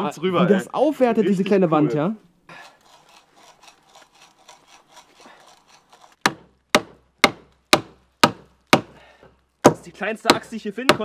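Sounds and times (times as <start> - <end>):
scraping of wood: 2.5 - 6.6.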